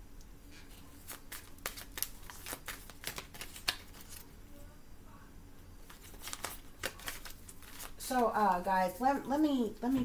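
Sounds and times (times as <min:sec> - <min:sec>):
playing cards clicking and flicking: 0:00.7 - 0:04.2, 0:05.8 - 0:08.0.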